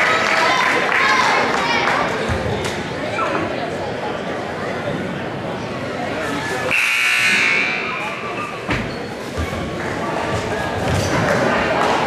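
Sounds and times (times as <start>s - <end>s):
crowd murmur: 0.0s - 12.0s
scoreboard horn: 6.7s - 8.2s.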